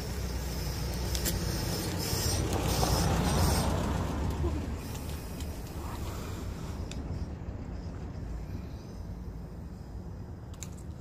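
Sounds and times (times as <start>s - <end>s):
road vehicle passing: 0.0s - 11.0s.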